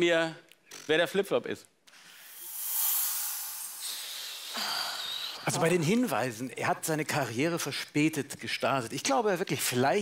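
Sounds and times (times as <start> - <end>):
rushing hiss: 2.1 - 5.4.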